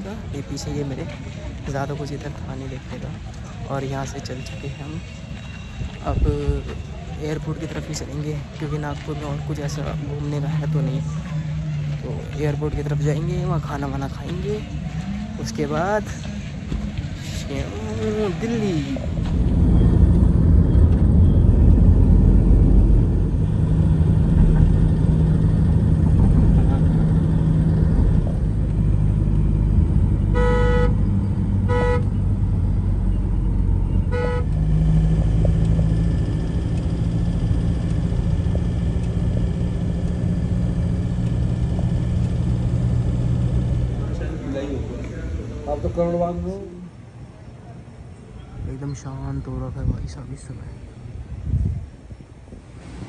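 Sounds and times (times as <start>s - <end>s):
road and engine rumble in car: 6.0s - 46.6s
car horn honks: 30.3s - 32.2s, 34.0s - 34.6s.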